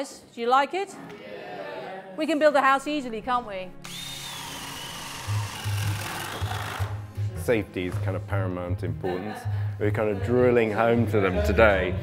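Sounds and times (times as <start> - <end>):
power drill boring into wood: 3.8 - 7.0.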